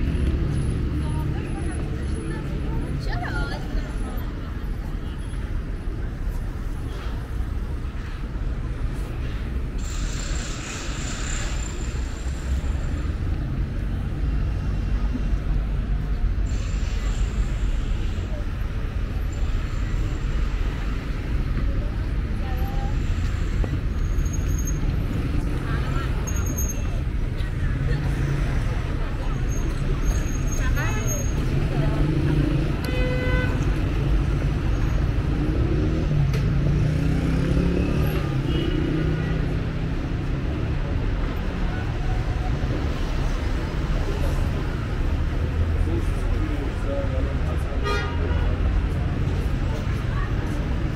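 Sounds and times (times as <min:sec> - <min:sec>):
street traffic rumble: 0:00.0 - 0:50.9.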